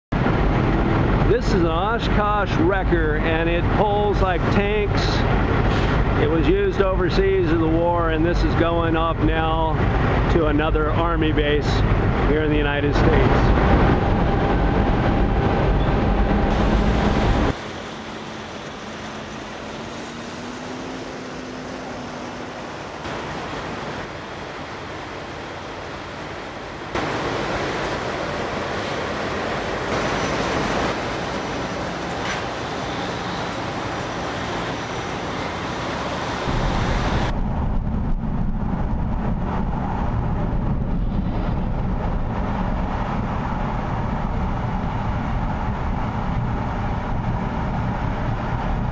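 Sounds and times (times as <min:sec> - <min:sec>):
low traffic rumble: 0:00.1 - 0:48.9
passing vehicles: 0:00.1 - 0:48.9.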